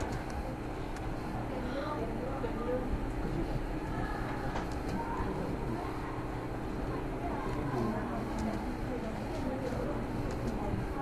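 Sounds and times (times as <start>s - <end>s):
faint keyboard typing clicks: 0.0s - 1.1s, 4.3s - 5.2s, 7.5s - 8.7s, 10.2s - 10.7s.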